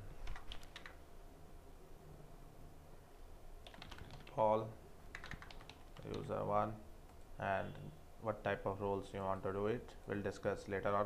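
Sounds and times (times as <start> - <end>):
computer keyboard typing: 0.2 - 1.0, 3.6 - 4.4, 5.1 - 6.3.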